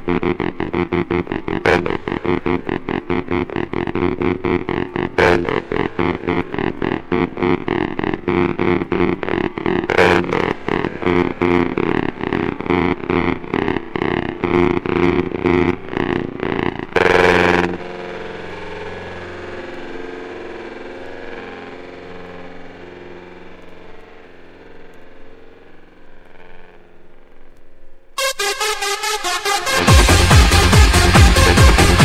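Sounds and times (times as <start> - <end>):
held synth pad chord: 0.0 - 27.3, 28.1 - 32.0
pulsing synth chord: 0.0 - 32.0.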